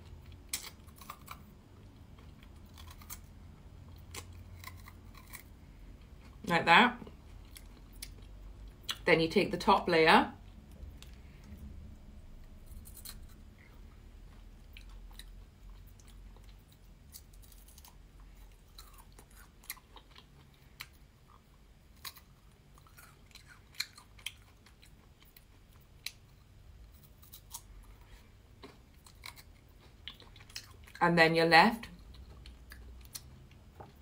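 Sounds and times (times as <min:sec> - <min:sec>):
person chewing: 0:00.0 - 0:06.4, 0:07.0 - 0:09.0, 0:12.4 - 0:31.0, 0:31.9 - 0:34.0.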